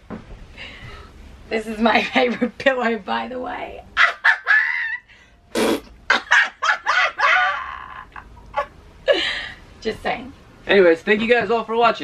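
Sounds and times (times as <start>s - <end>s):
people laughing: 6.1s - 8.7s.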